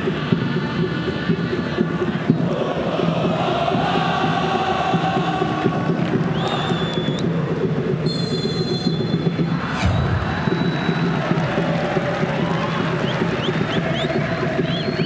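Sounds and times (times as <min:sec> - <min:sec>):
crowd chanting and singing: 0:00.0 - 0:07.9, 0:09.3 - 0:15.0
referee whistle blasts: 0:06.4 - 0:07.2, 0:08.0 - 0:11.5.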